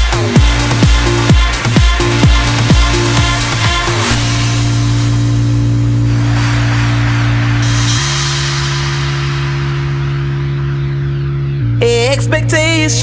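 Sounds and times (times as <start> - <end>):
held low synth chord: 2.1 - 12.0
swelling hiss: 3.0 - 10.4.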